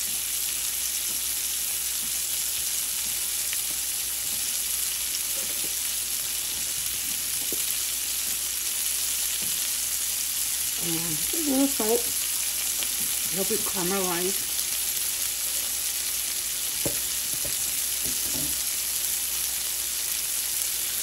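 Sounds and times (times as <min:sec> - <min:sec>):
onion sizzling in butter: 0:00.0 - 0:21.0.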